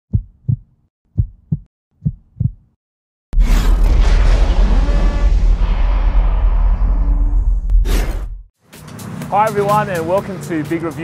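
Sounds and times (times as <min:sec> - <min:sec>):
heartbeat thumps: 0:00.1 - 0:02.8
loud boom with low rumble: 0:03.4 - 0:08.5.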